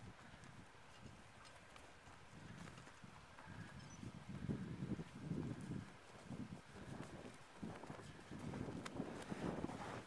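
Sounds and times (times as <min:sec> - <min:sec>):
footsteps crunching in snow: 0:04.8 - 0:10.0.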